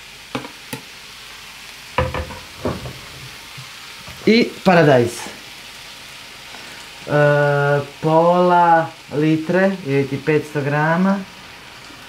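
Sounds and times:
vegetables sizzling in a pan: 0.0 - 12.0.

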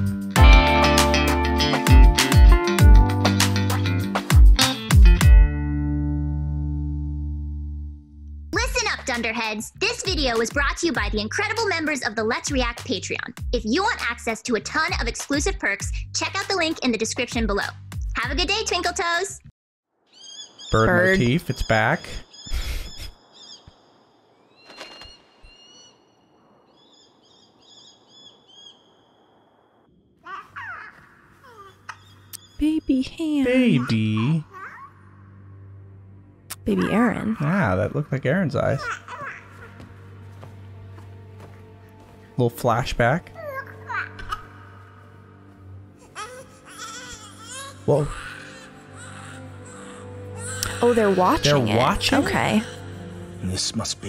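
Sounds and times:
high whistling bird cries: 24.6 - 26.1
baby crying: 30.3 - 32.1, 33.7 - 35.1, 36.7 - 40.4, 43.3 - 45.1, 46.0 - 53.0
soft background music: 32.5 - 54.0.

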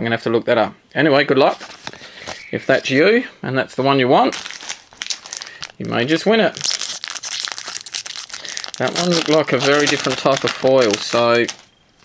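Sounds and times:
foil wrapper crinkling and tearing: 4.3 - 11.7.

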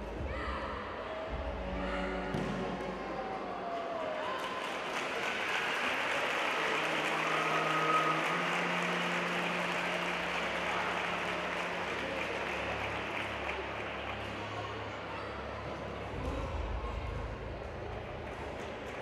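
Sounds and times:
audience murmur in hall: 0.0 - 19.0.

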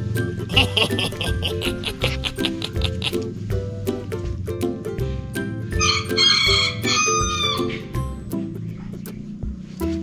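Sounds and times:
background music: 0.0 - 10.0
rooster crowing: 5.8 - 7.8.

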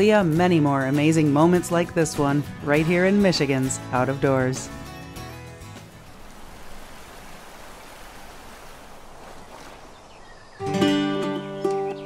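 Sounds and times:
flowing water rushing: 5.8 - 10.6.

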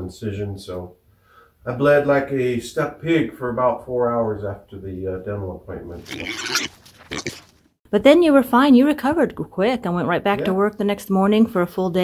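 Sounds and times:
pig grunting: 6.0 - 7.5.

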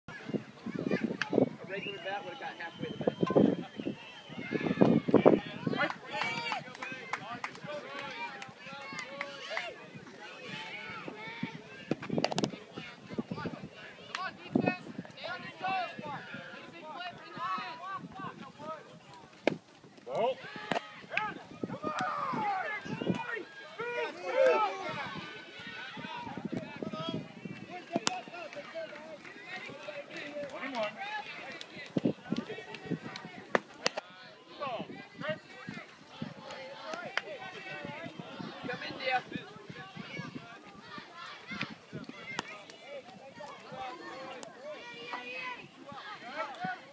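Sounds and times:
spectators cheering and shouting: 0.1 - 19.0, 20.1 - 46.9
overlapping voices chattering: 0.1 - 46.9.

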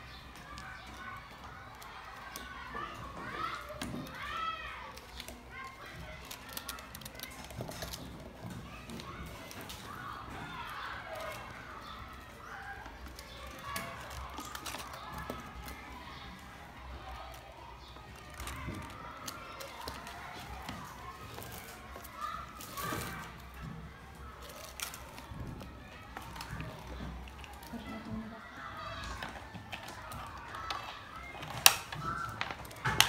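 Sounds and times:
children chattering: 0.0 - 33.0.

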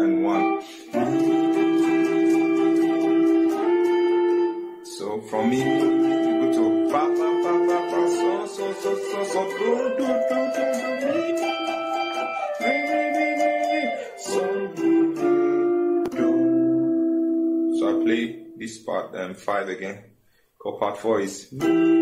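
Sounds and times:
electric guitar solo: 0.0 - 18.7, 21.6 - 22.0.

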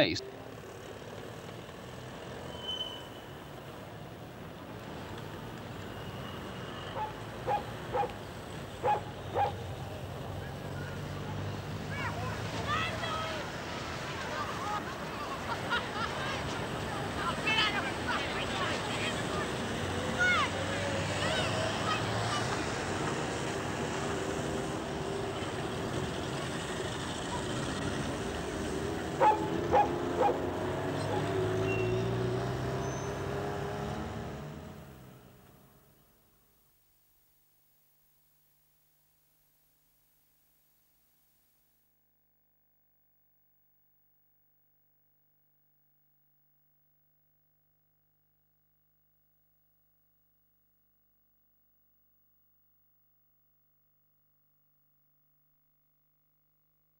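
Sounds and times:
low hum of traffic: 0.0 - 37.3
dog barking: 6.9 - 8.2, 8.8 - 9.7, 29.2 - 31.4.

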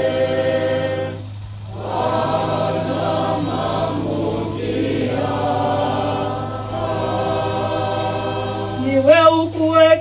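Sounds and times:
group singing a hymn: 0.0 - 10.0
steady low hum: 0.0 - 10.0.

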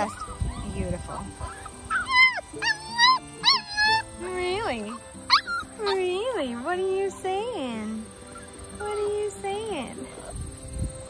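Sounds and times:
puppy whining: 0.0 - 6.8, 7.9 - 9.1.

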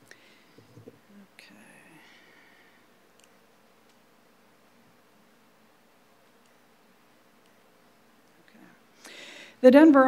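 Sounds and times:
faint whisper: 1.1 - 2.4.

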